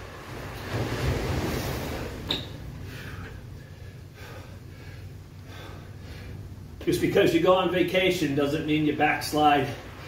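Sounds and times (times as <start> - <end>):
ocean surf rushing: 0.0 - 2.9.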